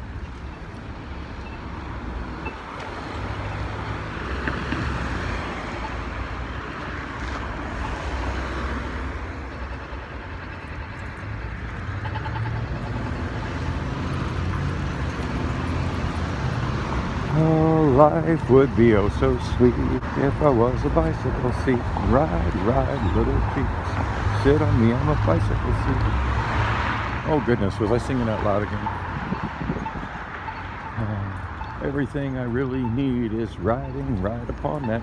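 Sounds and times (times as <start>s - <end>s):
cars driving on city road: 0.0s - 35.0s.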